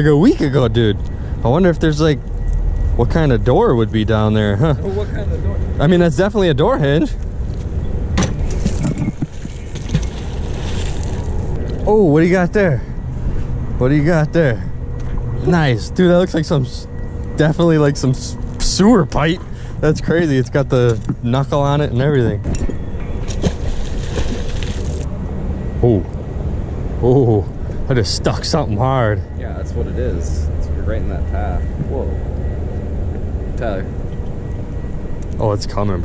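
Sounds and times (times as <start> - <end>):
handling knocks and rustles: 7.6 - 11.4
magnet splashing into water: 9.3 - 11.4, 23.3 - 25.1.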